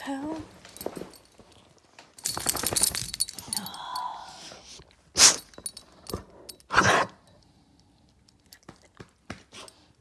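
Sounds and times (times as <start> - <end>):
metallic jingling and clinking: 0.5 - 4.0, 5.4 - 6.7.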